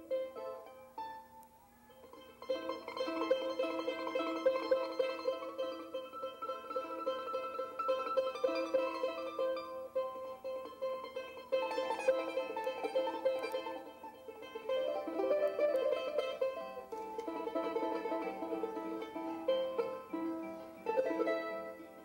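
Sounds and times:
two small lutes playing: 0:00.0 - 0:22.0.

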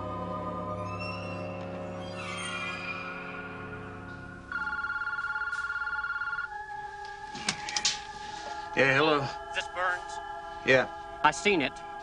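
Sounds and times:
warbling electronic phone ring: 0:04.5 - 0:06.5.

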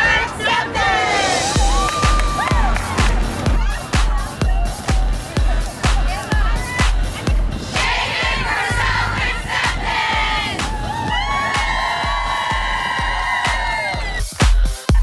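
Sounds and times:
group cheering and shouting: 0:00.0 - 0:15.0
pop music with steady beat: 0:00.0 - 0:15.0.

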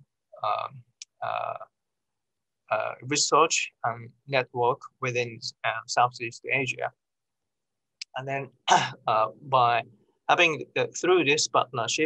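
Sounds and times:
man saying uh: 0:00.4 - 0:01.6.

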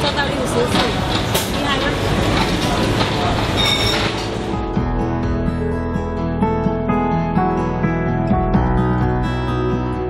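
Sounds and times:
high squeal: 0:03.6 - 0:04.2.

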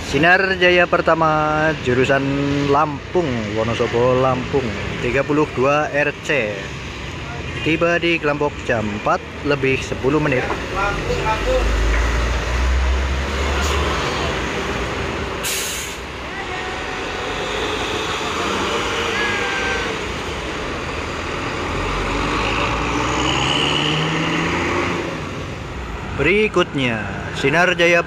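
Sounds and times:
air brakes hiss: 0:15.4 - 0:16.1.

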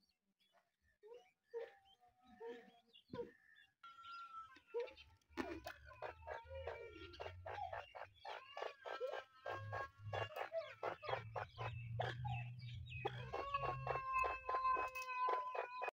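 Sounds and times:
birds chirping rapidly: 0:00.4 - 0:15.9.

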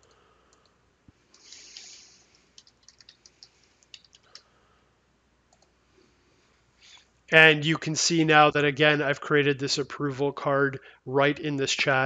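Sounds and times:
computer keyboard typing: 0:01.4 - 0:04.4.

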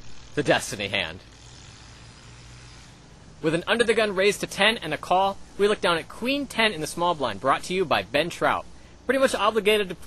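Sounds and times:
faint low hum and hiss: 0:00.0 - 0:10.0
man narrating: 0:00.4 - 0:01.2, 0:03.4 - 0:10.0.

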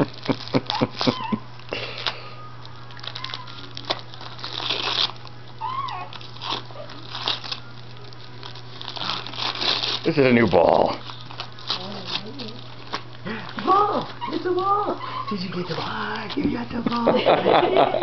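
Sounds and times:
dog tearing wrapping paper: 0:00.0 - 0:17.2.

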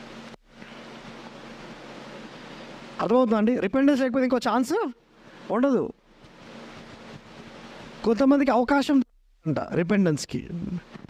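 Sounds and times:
faint steady hum: 0:00.0 - 0:11.0
microphone background hiss: 0:00.0 - 0:11.0.

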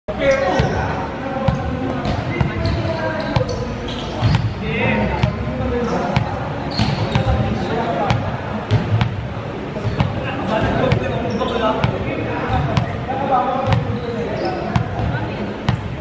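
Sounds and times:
players' voices: 0:00.1 - 0:16.0.

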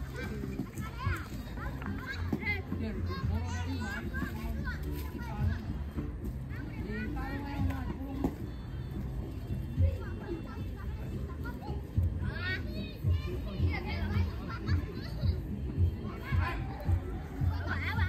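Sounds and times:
adults talking: 0:00.0 - 0:18.0
children playing and calling out: 0:00.0 - 0:18.0.

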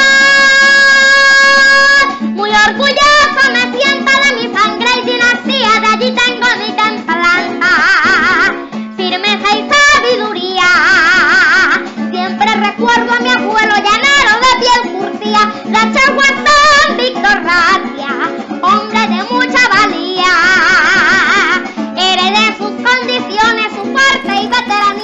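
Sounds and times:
boy singing into a microphone: 0:00.0 - 0:25.0
plucked string accompaniment: 0:00.0 - 0:25.0.

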